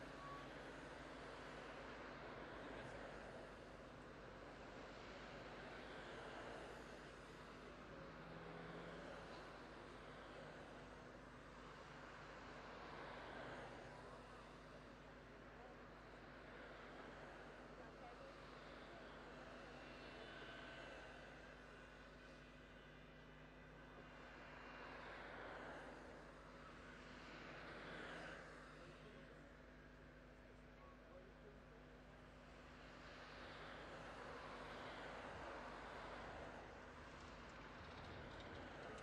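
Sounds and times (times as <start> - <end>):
road noise from vehicle: 0.0 - 39.0.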